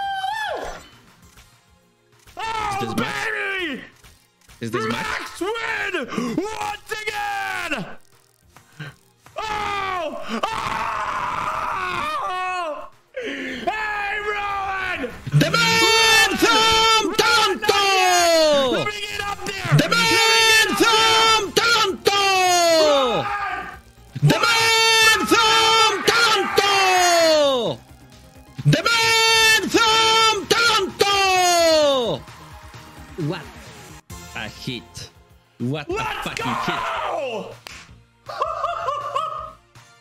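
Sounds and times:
man yelling and screaming: 2.4 - 3.8, 4.7 - 8.0, 9.4 - 27.8, 28.6 - 32.2, 35.8 - 37.6.

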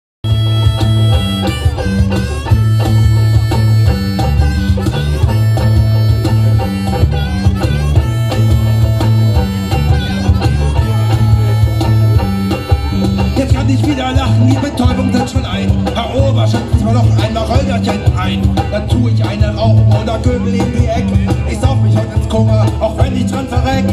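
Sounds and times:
bass line: 0.2 - 23.9
drum beat: 0.2 - 23.9
electric guitar: 0.2 - 23.9
harmonica: 0.2 - 23.9.

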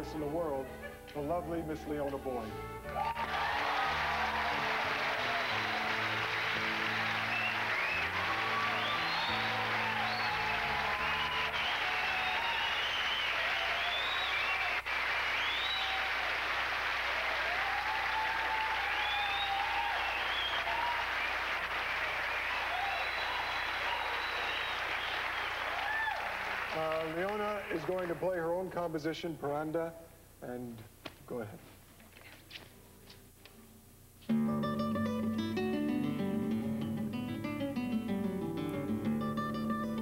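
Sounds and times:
band playing: 0.0 - 12.5
cheers and whistles: 2.9 - 16.4, 17.1 - 21.5, 22.2 - 27.1
audience applauding: 2.9 - 28.6.

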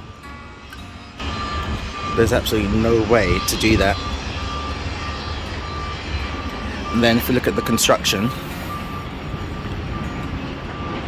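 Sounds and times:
reversing alarm beeping: 0.0 - 11.0
wind noise with low rumble: 0.0 - 11.0.

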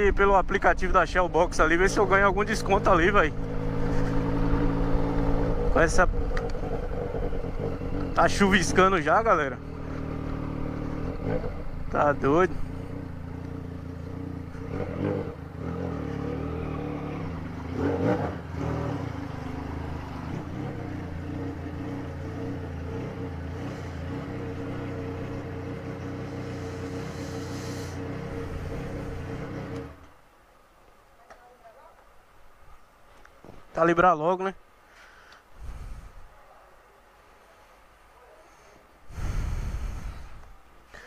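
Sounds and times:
motorcycle engine idling: 1.5 - 16.2, 18.4 - 30.0.

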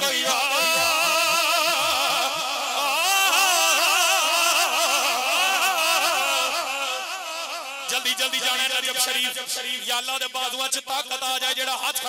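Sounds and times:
man singing into microphone: 0.0 - 9.9.

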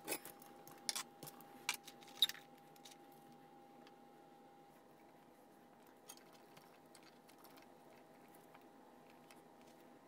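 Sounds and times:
faint thin whine: 0.0 - 10.0.

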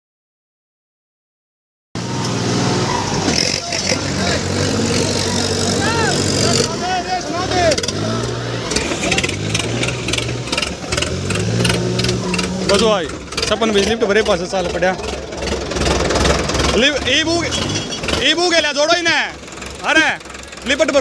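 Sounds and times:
people's voices: 2.0 - 21.0
tractor diesel engines running: 2.0 - 21.0.

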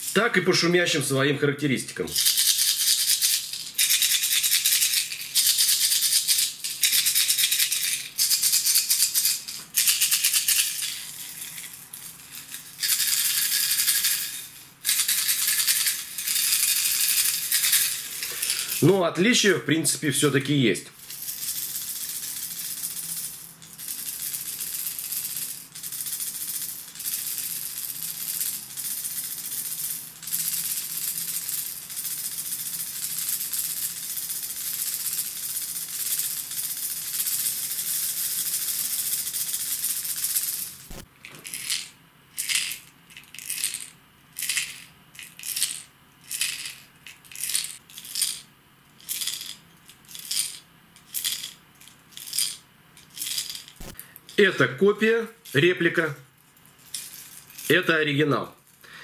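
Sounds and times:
plastic fishing lure rattling: 2.2 - 18.8, 21.2 - 48.4, 49.0 - 54.4.

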